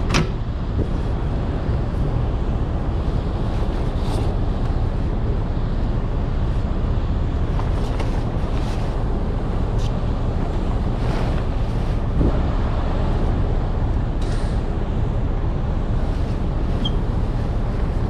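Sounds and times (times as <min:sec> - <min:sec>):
low outdoor rumble: 0:00.0 - 0:18.0
wind on microphone: 0:00.0 - 0:18.0.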